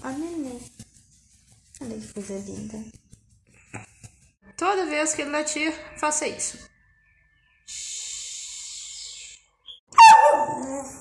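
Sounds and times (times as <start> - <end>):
small dog barking: 10.0 - 10.8.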